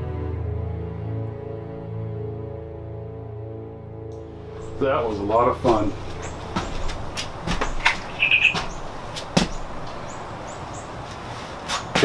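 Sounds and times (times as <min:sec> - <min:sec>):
outdoor background noise: 0:04.1 - 0:12.0
bird chirp: 0:04.3 - 0:11.0
light knocks and clicks: 0:05.7 - 0:10.2.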